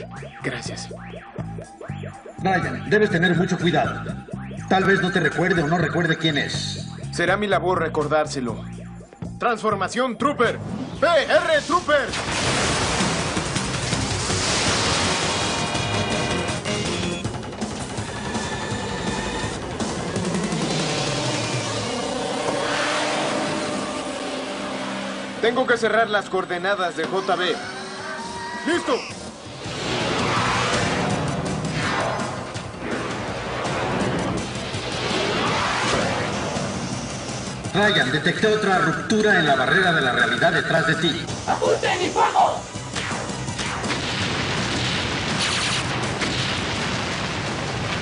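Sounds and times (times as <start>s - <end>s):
explosions rumbling and cracking: 12.1s - 16.6s, 43.0s - 48.0s
motorcycle engine rushing: 17.4s - 25.8s.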